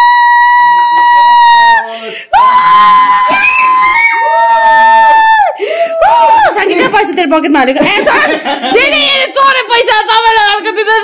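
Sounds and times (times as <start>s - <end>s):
people shrieking: 0.0s - 6.6s.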